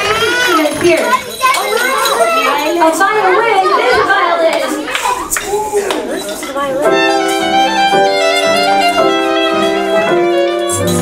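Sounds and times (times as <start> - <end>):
violin bowed melody: 6.8 - 11.0.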